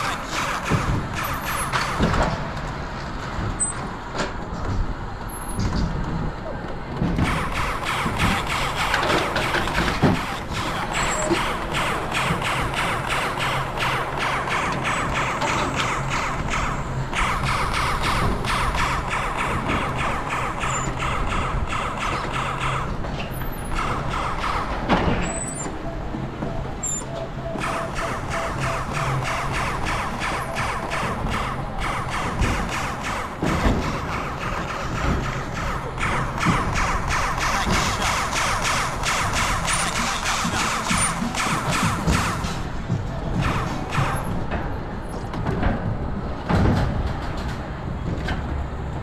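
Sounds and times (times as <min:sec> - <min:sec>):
rhythmic track clatter: 0:00.0 - 0:02.7, 0:07.1 - 0:46.1
coaster car rolling on steel rail: 0:00.0 - 0:49.0.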